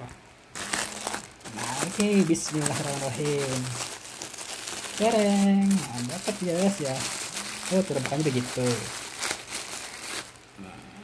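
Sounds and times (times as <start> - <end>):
plastic wrapping crinkling: 0.5 - 10.6.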